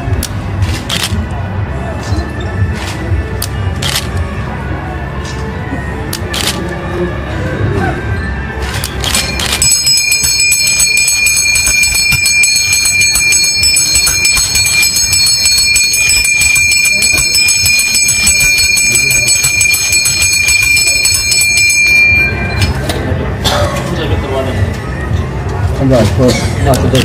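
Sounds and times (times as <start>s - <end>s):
hand bell ringing: 9.1s - 22.9s.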